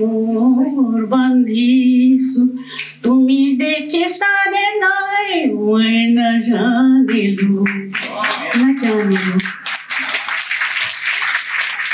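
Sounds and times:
woman singing: 0.0s - 9.5s
audience applause: 7.9s - 11.9s.

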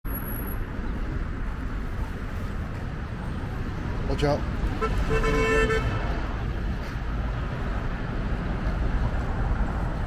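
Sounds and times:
street traffic rumble: 0.0s - 10.0s
vehicle horn toot: 4.8s - 6.0s.

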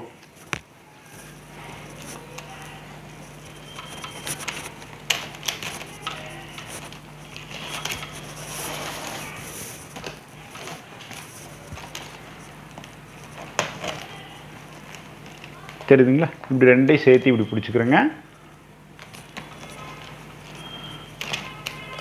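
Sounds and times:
steady low hum: 0.0s - 22.0s
plastic strapping rustling: 3.2s - 16.6s.

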